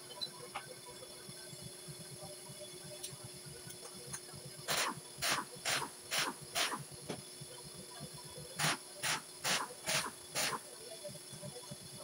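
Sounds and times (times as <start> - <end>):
compressed air blow gun hissing: 8.6 - 10.6.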